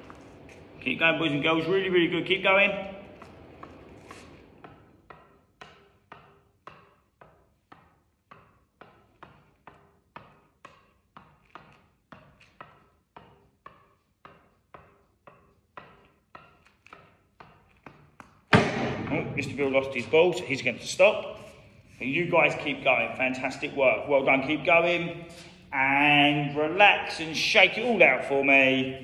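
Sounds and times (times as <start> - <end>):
tennis ball tapped on racket: 3.2 - 18.6.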